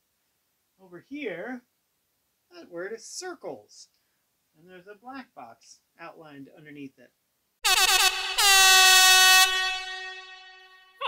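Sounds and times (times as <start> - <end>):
horn blasts: 7.6 - 11.0.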